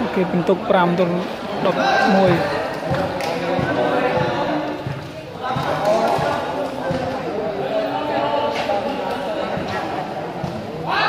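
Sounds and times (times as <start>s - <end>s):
men talking and calling: 0.0s - 11.0s
volleyball thuds: 2.3s - 7.2s.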